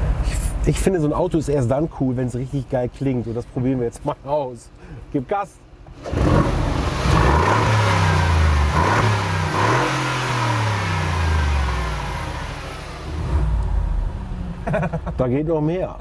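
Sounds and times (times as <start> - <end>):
car engine revving hard: 6.0 - 14.6.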